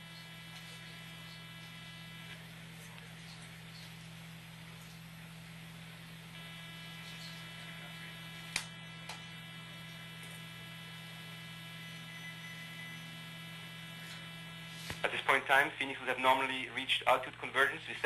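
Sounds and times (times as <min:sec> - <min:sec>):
thin buzz: 0:00.0 - 0:15.1
steady electrical hum: 0:00.0 - 0:18.0.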